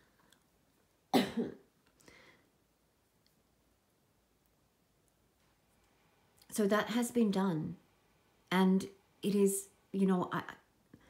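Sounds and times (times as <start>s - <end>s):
woman coughing: 1.1s - 1.6s
faint breath: 2.0s - 2.6s.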